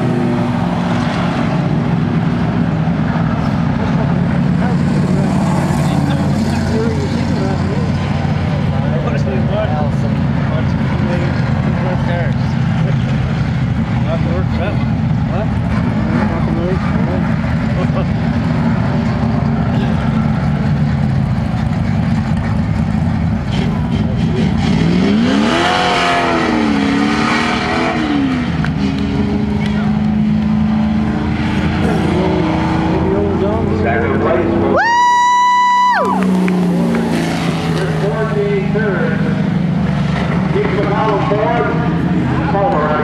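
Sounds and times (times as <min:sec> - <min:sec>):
race car engines: 0:00.0 - 0:43.0.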